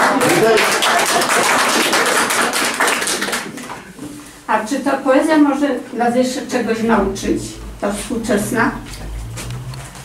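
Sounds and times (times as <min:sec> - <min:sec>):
people clapping: 0:00.0 - 0:04.0.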